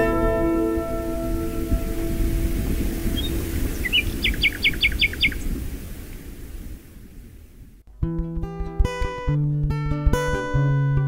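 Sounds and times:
plucked string chord: 0:00.0 - 0:03.1, 0:07.9 - 0:11.0
small bird chirping: 0:02.7 - 0:05.9.

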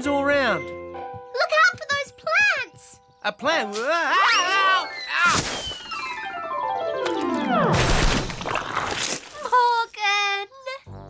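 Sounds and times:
descending whistle: 0:04.3 - 0:06.6
cartoon crash: 0:04.4 - 0:06.6, 0:07.6 - 0:09.4.

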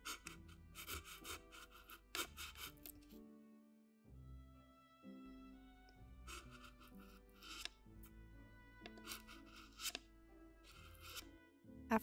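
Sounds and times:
stick scratching foam: 0:00.0 - 0:03.2, 0:06.2 - 0:07.8, 0:08.8 - 0:11.3
soft background music: 0:00.0 - 0:12.0.

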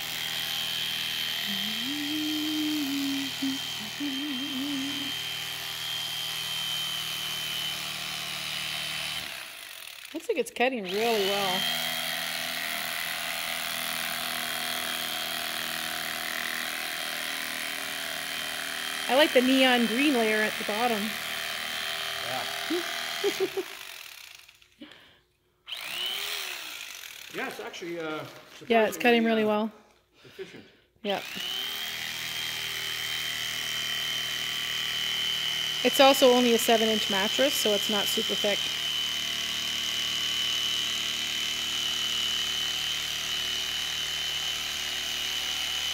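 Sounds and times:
electric knife cutting foam: 0:00.0 - 0:25.1, 0:25.7 - 0:29.3, 0:31.1 - 0:45.9.

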